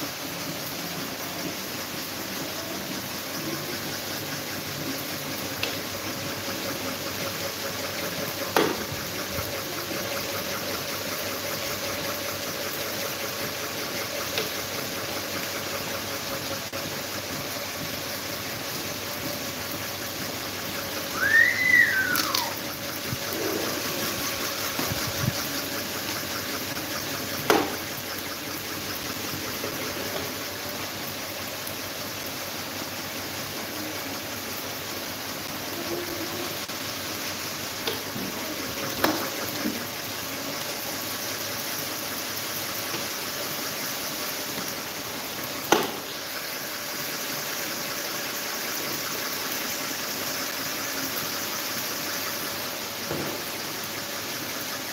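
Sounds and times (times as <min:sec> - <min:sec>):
electric fans whirring: 0:00.0 - 0:54.9
brief high squeal: 0:21.2 - 0:22.6.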